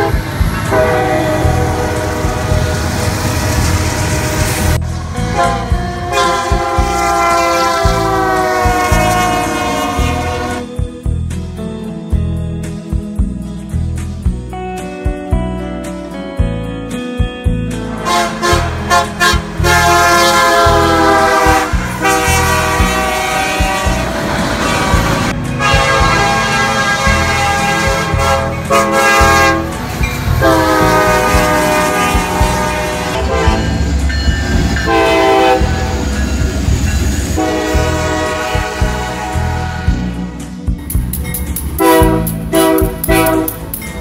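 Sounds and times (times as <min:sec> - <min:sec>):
locomotive air horn blasts: 0:00.0 - 0:10.7, 0:17.9 - 0:34.2, 0:34.8 - 0:36.1, 0:37.3 - 0:40.2, 0:41.8 - 0:43.8
locomotive engine rumble: 0:00.0 - 0:11.6, 0:17.5 - 0:44.0
wheels on rails: 0:40.8 - 0:44.0.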